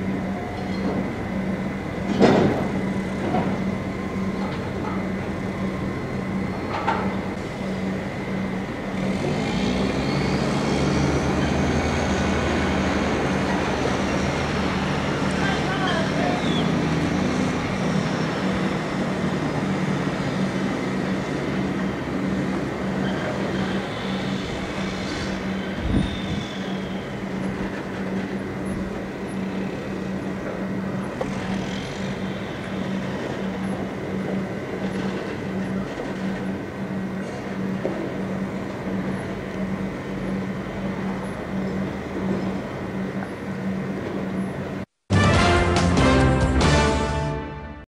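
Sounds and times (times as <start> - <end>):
diesel truck engine running: 0.0 - 45.3.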